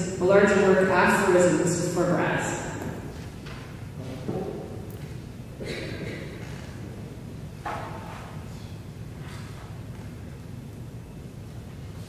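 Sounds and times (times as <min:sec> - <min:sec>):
low room hum: 0:00.0 - 0:12.0
people shuffling and rustling: 0:02.7 - 0:10.4.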